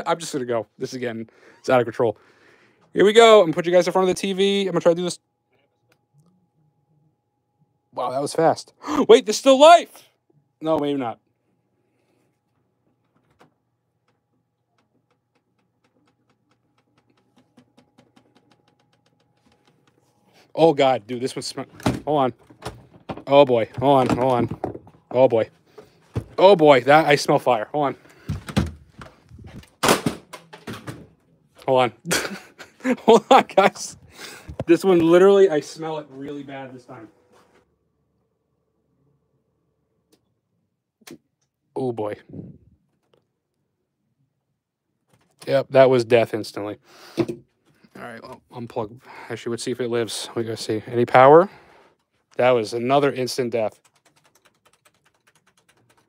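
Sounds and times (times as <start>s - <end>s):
fast faint clicking: 53.6s - 56.0s.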